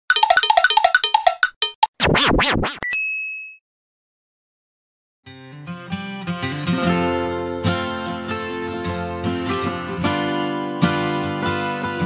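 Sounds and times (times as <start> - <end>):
playful jingle of bright notes: 0.1 - 1.8.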